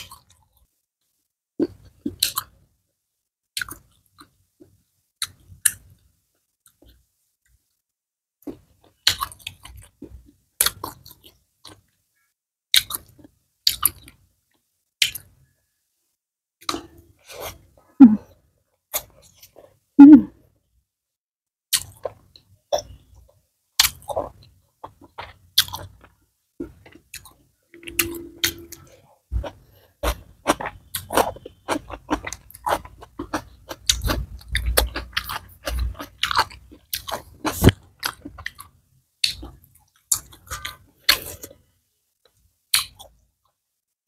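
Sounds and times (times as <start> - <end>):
person chewing: 23.8 - 41.6.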